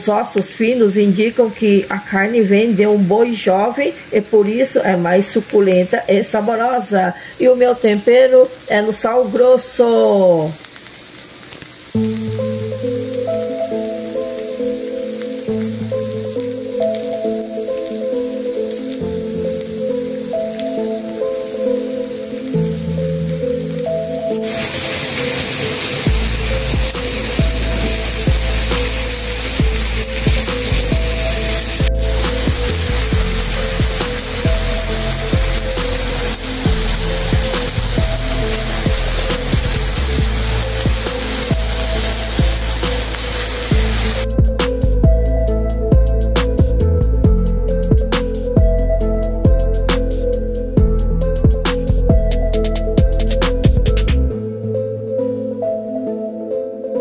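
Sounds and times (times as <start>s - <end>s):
meat sizzling on a grill: 0.1s - 45.2s
background music: 11.9s - 57.0s.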